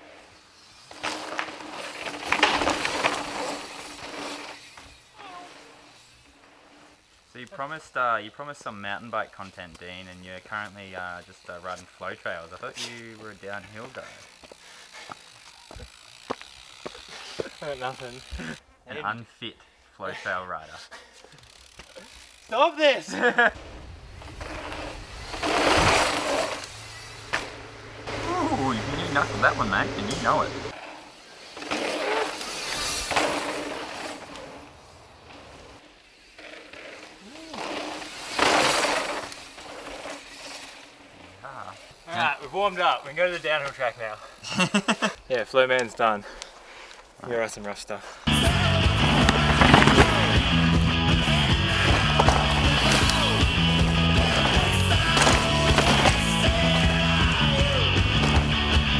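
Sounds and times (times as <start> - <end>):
bike tyres crunching on dirt: 0.0 - 19.4, 20.2 - 58.9
bike clicks and rattles: 0.6 - 7.1, 8.6 - 18.6, 21.0 - 22.7, 24.1 - 58.9
steady buzz: 23.2 - 36.7, 48.3 - 58.9.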